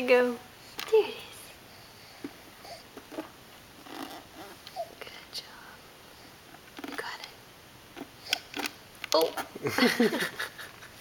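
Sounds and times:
soft whispery murmurs: 4.3 - 7.4.

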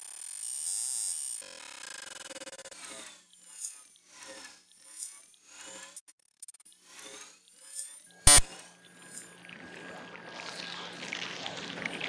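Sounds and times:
loud electronic hit: 8.3 - 8.5.

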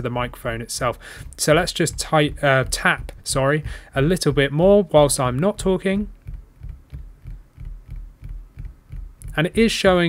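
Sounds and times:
finger tapping on a desk: 0.8 - 10.0.

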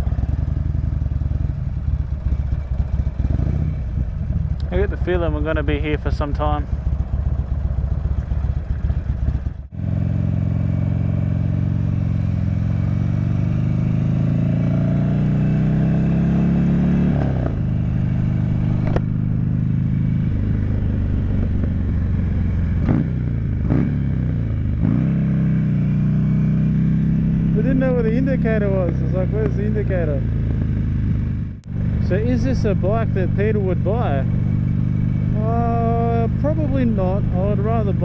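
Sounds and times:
motorcycle engine accelerating: 0.0 - 38.0.

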